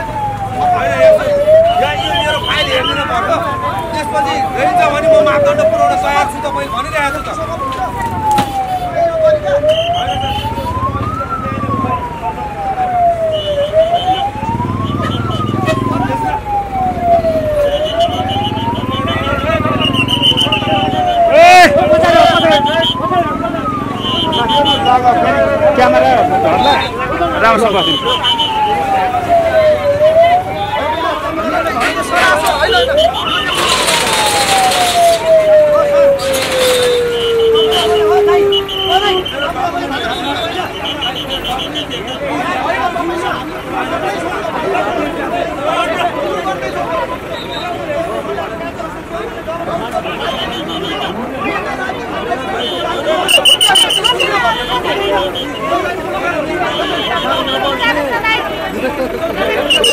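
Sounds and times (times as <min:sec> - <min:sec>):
crowd voices: 0:00.0 - 0:59.9
siren wailing: 0:00.0 - 0:59.9
short high beeps: 0:59.6 - 0:59.9.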